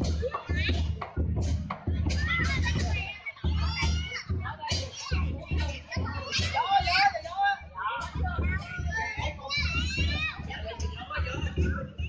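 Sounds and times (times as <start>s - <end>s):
children shouting: 0.0s - 1.3s, 1.9s - 11.9s
drum beating in rolls: 0.0s - 12.0s.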